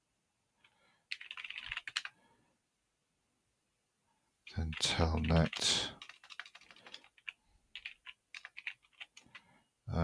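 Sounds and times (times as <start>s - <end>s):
keyboard typing: 1.1s - 2.2s, 4.6s - 9.5s.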